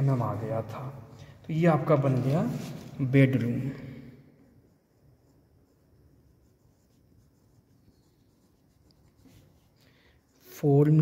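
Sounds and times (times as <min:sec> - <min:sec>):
pencil writing on paper: 0:04.4 - 0:11.0.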